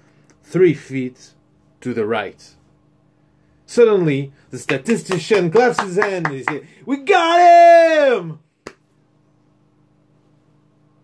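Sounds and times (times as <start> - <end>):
faint room hum: 0.0 - 11.0
man shouting: 5.2 - 8.4.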